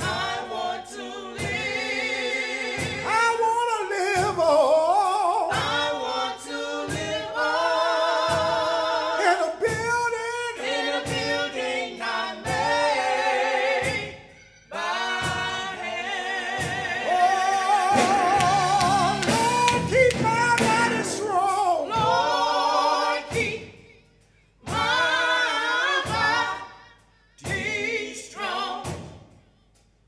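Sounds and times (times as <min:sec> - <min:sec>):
group singing gospel song: 0:00.0 - 0:29.4
steady percussive beat: 0:00.0 - 0:30.0.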